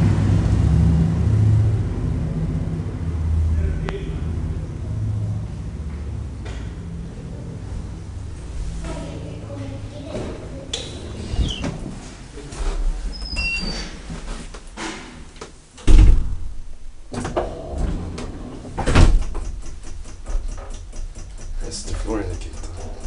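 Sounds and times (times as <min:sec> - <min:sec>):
elevator doors sliding and clattering: 0:10.0 - 0:23.0
heavy thuds: 0:15.9 - 0:18.0, 0:18.7 - 0:23.0
rapid even ticking: 0:19.1 - 0:23.0.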